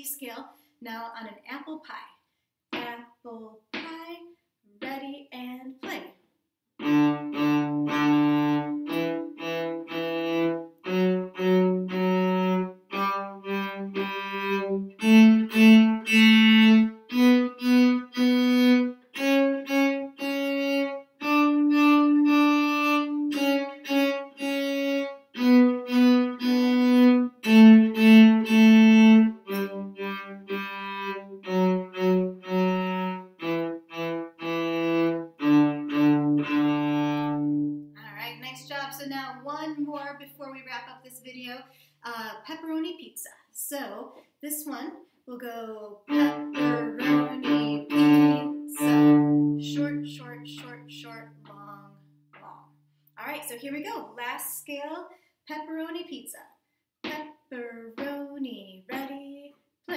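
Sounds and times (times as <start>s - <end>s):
cello playing a scale: 6.8s - 40.2s, 45.9s - 53.3s, 57.0s - 58.3s, 58.9s - 59.9s.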